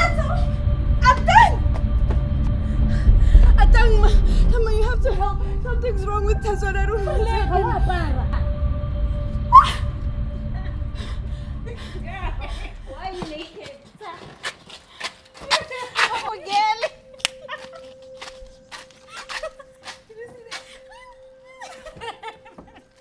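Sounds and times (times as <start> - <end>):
low rumble: 0.0 - 13.6
women talking and exclaiming: 15.4 - 17.8.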